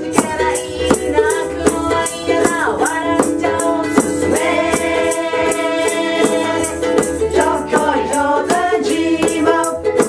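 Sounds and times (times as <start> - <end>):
ukuleles strummed: 0.0 - 10.0
voices singing together: 0.0 - 10.0.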